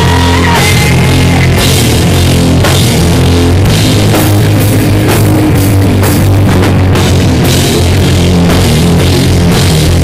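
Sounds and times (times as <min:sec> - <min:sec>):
bass guitar: 0:00.0 - 0:10.0
distorted electric guitar: 0:00.0 - 0:10.0
drum kit with crashing cymbals: 0:00.0 - 0:10.0.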